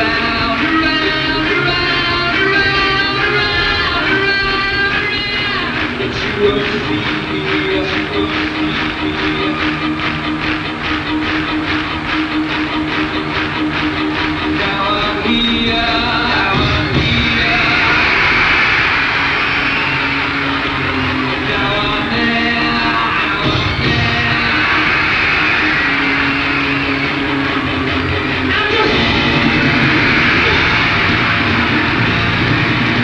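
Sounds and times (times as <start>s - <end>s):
live concert roar: 0.0s - 33.0s
rhythmic pulse: 0.0s - 33.0s.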